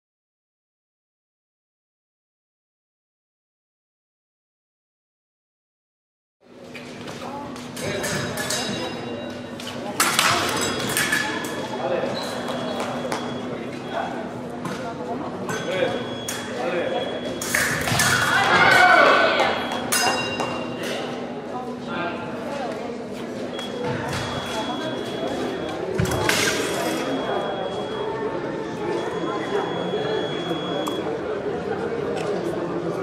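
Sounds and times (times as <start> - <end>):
voices echoing in a hall: 6.8 - 33.0.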